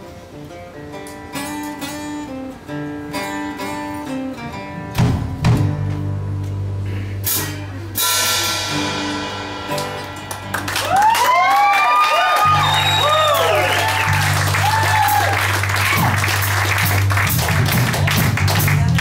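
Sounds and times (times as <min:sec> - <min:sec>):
picked guitar lead notes: 0:00.0 - 0:10.8
loud drum hit: 0:05.0 - 0:06.0
cymbal crashes: 0:07.2 - 0:10.5.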